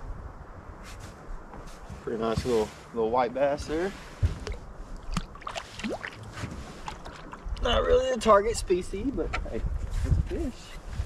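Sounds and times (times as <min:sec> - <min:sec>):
wind rumble on microphone: 0:00.0 - 0:11.0
hand splashing in water: 0:04.4 - 0:07.5.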